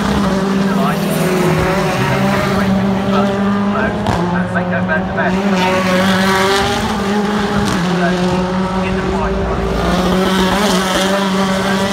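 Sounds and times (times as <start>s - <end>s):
racing car engines passing: 0.0s - 11.9s.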